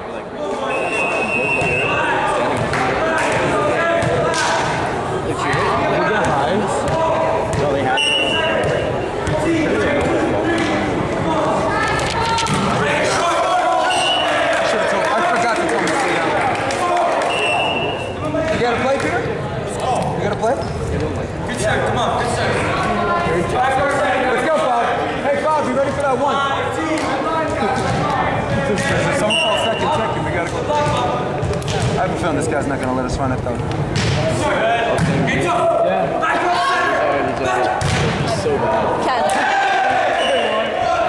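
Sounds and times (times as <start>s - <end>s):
echoing chatter and calls: 0.0s - 41.0s
ball bouncing: 8.6s - 10.8s, 12.4s - 12.8s.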